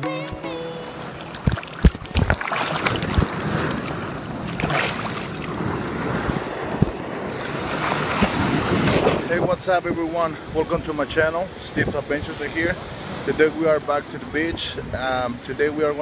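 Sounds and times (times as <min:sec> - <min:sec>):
sea water sloshing and splashing: 0:01.0 - 0:09.4
wind buffeting microphone: 0:01.4 - 0:13.5.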